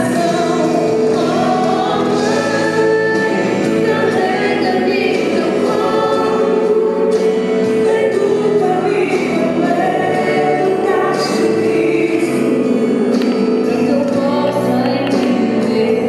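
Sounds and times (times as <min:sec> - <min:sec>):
choir singing with long held notes: 0:00.0 - 0:16.0.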